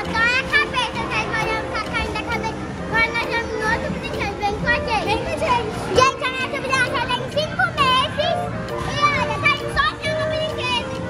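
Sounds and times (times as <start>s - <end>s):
children calling out and playing: 0.0s - 11.0s
music: 0.0s - 11.0s.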